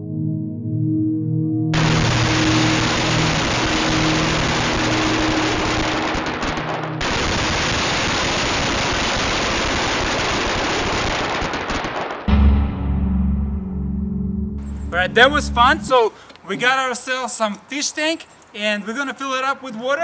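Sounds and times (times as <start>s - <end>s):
background music: 0.0s - 7.1s, 12.3s - 16.1s
firecracker crackling: 1.8s - 12.3s.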